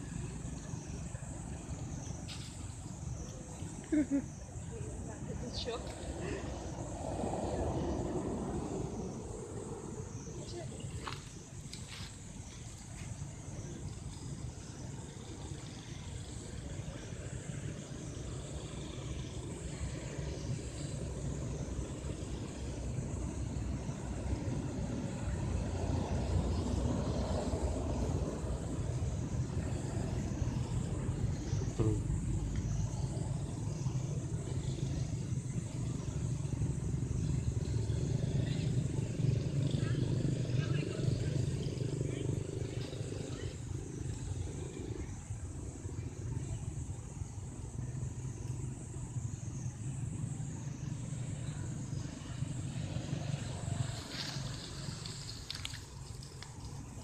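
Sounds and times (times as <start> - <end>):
low steady rumble: 0.0 - 57.0
faint indistinct voices: 38.0 - 47.2.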